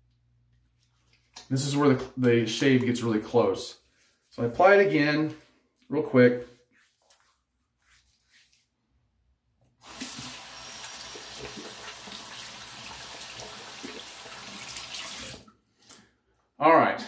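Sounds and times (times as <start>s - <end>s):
water running into sink: 9.8s - 15.5s.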